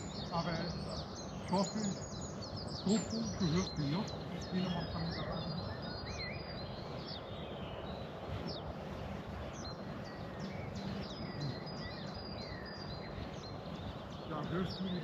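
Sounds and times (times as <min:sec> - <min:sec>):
outdoor background rumble: 0:00.0 - 0:15.0
songbirds chirping: 0:00.0 - 0:15.0.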